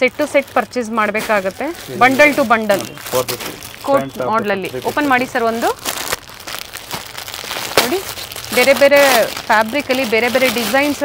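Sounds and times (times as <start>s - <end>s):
plastic packaging crinkling: 0.0s - 11.0s
person speaking: 0.7s - 5.8s.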